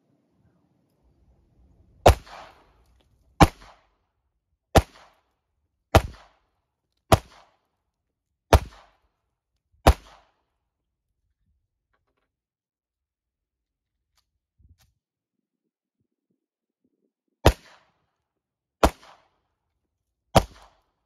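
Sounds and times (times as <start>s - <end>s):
pistol shots with echo: 2.0s - 2.8s, 3.4s - 4.0s, 4.7s - 5.3s, 5.9s - 7.7s, 8.5s - 9.0s, 9.8s - 10.5s, 17.4s - 18.0s, 18.8s - 19.4s, 20.3s - 20.9s.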